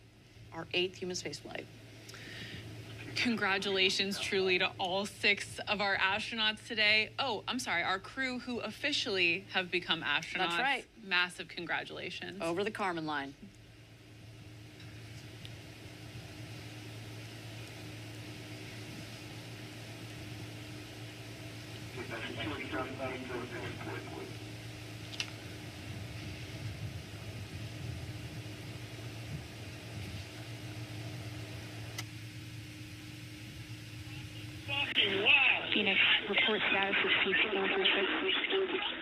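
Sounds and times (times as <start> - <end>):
low hum: 0.0 - 39.0
faint steady tone: 13.4 - 39.0.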